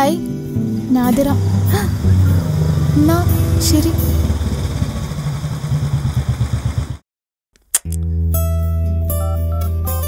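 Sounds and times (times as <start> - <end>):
vehicle engine throbbing: 0.5 - 7.0
sharp click: 7.6 - 8.1.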